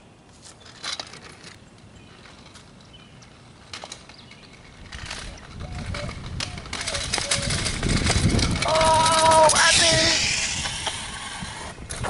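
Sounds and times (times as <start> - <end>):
scooter wheels rolling on asphalt: 0.2 - 12.0
person shouting: 8.6 - 10.4.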